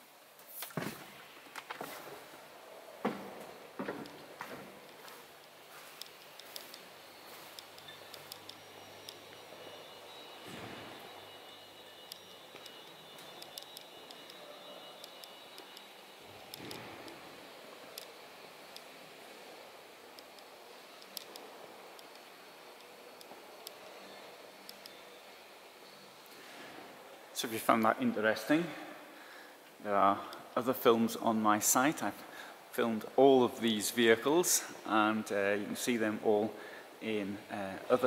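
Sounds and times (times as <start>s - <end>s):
faint hall ambience: 0.0s - 38.0s.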